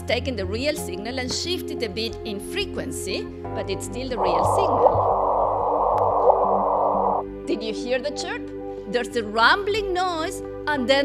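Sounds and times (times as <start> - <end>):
steady rumbling noise: 4.2 - 7.2.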